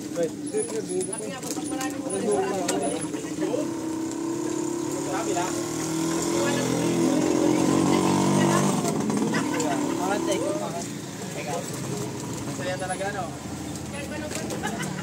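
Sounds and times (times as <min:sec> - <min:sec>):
people chattering: 0:00.0 - 0:15.0
vehicle engine running: 0:00.0 - 0:15.0.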